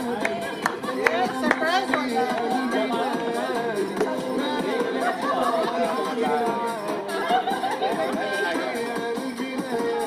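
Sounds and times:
background music: 0:00.0 - 0:10.0
people talking at once: 0:00.0 - 0:10.0.

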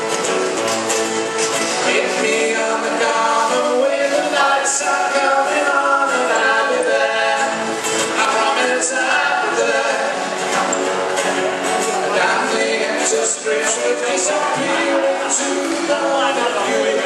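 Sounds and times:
acoustic guitar accompaniment: 0:00.0 - 0:17.0
person singing into microphone: 0:01.7 - 0:10.8, 0:11.9 - 0:17.0.

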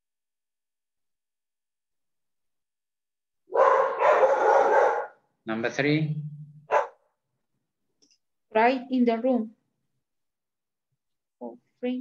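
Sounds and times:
dog barking over video call: 0:03.5 - 0:05.4, 0:06.6 - 0:07.2.

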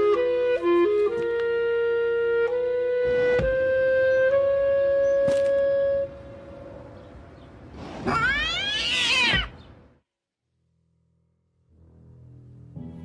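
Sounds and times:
held woodwind note: 0:00.0 - 0:06.2.

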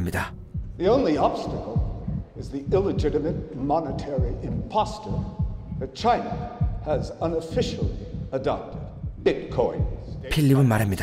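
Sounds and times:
low beat in soundtrack music: 0:00.0 - 0:11.0
person speaking: 0:00.0 - 0:11.0.

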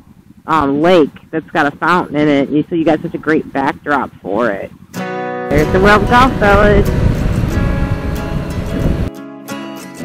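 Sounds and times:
motorcycle riding noise: 0:00.0 - 0:09.1
acoustic guitar music: 0:00.2 - 0:10.0.

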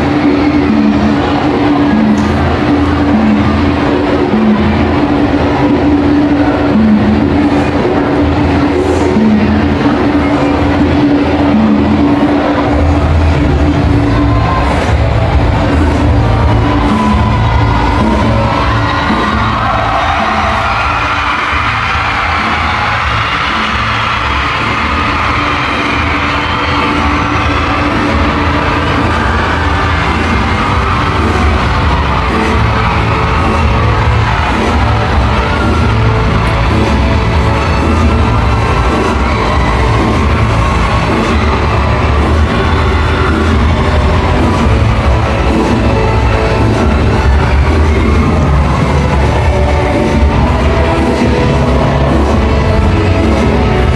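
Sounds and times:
loud live music over pa: 0:00.0 - 0:53.9.

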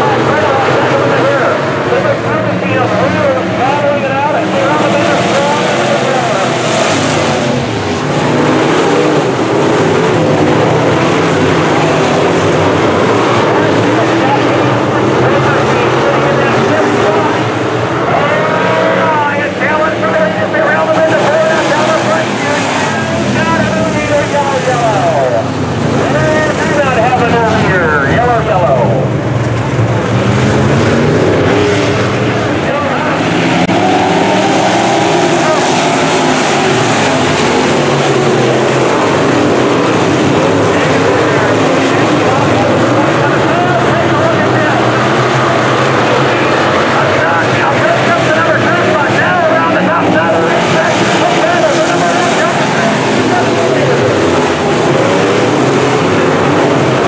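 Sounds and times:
race car engines at full throttle: 0:00.0 - 0:57.0.

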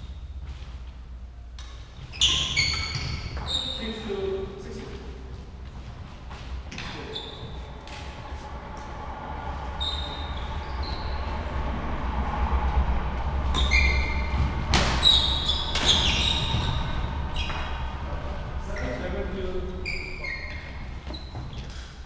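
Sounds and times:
steady low hum: 0:00.0 - 0:02.6, 0:03.2 - 0:22.0
shoes squeaking on wooden court: 0:01.6 - 0:08.0, 0:13.6 - 0:17.8, 0:19.8 - 0:22.0.

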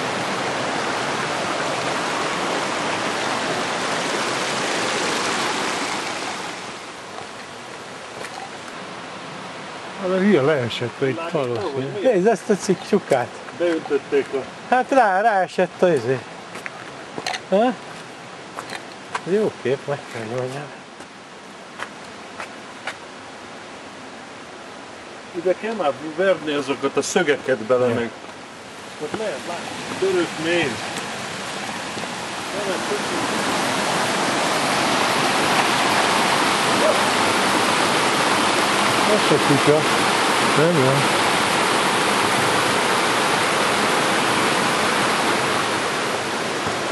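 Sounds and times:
steady outdoor hiss: 0:00.0 - 0:46.9
stream rushing over boulders: 0:00.0 - 0:46.9
footsteps on rocky dirt path: 0:07.1 - 0:08.8, 0:16.5 - 0:19.3, 0:21.8 - 0:23.0.

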